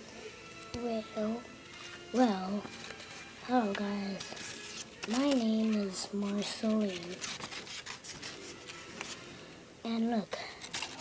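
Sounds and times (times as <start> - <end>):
paper rustling and scraping: 1.7 - 9.4, 10.6 - 11.0.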